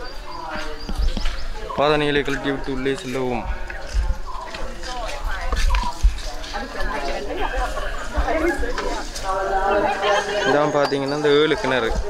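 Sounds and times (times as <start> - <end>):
overlapping chatter: 0.0 - 12.0.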